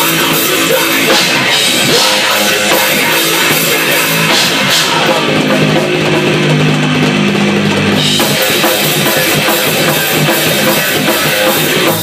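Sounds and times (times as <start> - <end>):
drum kit: 0.0 - 12.0.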